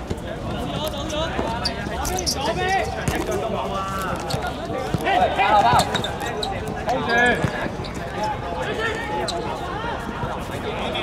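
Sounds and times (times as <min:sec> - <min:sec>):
players calling out: 0:00.2 - 0:11.0.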